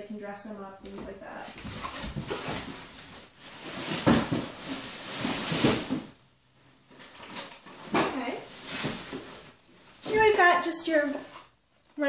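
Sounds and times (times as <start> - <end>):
rustling of cardboard and plastic: 0.9 - 11.6.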